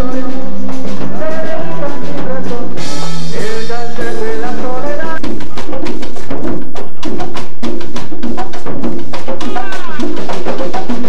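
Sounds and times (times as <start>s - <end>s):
person singing: 0.0s - 5.8s, 9.4s - 10.7s
congas and drums playing: 0.0s - 11.0s.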